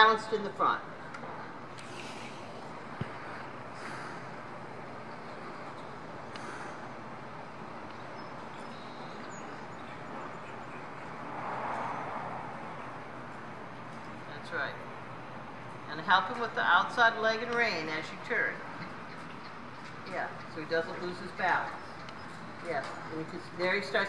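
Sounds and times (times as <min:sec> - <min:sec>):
indoor arena background noise: 0:00.0 - 0:24.0.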